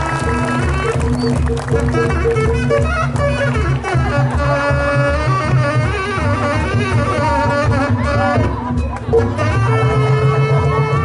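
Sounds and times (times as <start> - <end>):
wind instrument melody: 0.0 - 11.0.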